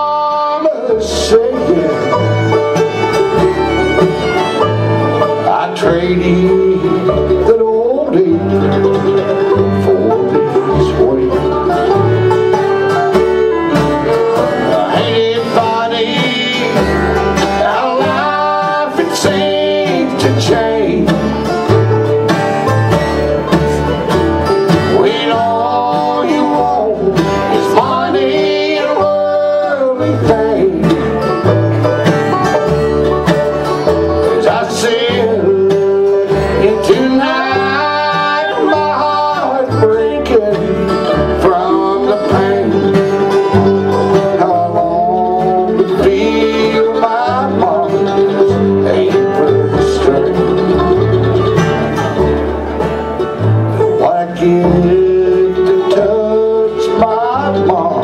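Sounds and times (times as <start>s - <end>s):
acoustic guitar: 0.0s - 58.0s
banjo: 0.0s - 58.0s
fiddle: 0.0s - 58.0s
mandolin: 0.0s - 58.0s
upright bass: 0.0s - 58.0s.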